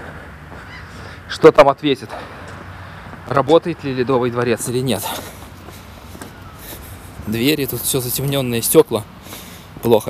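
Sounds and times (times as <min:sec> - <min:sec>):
footsteps on wet paving: 0:00.0 - 0:10.0
outdoor hiss: 0:05.0 - 0:10.0.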